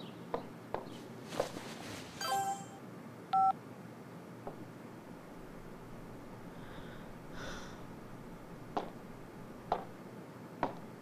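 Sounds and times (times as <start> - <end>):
phone message chime: 2.2 - 2.8.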